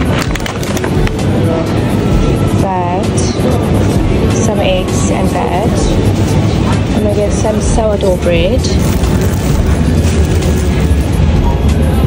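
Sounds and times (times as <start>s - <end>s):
trolley rattling clicks: 0.0s - 1.2s
faint music: 0.0s - 12.0s
shopping trolley wheels rumbling: 0.0s - 12.0s.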